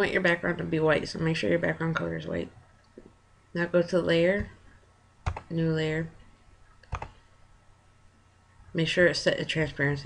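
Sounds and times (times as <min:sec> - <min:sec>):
computer mouse click: 0:05.2 - 0:05.5, 0:06.8 - 0:07.2.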